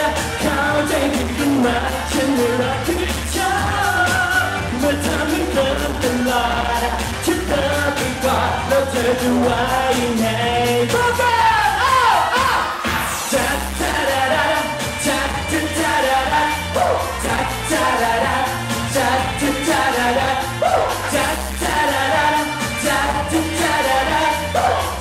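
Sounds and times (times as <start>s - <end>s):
bass and drum beat: 0.0s - 25.0s
man singing pop song into microphone: 0.0s - 25.0s.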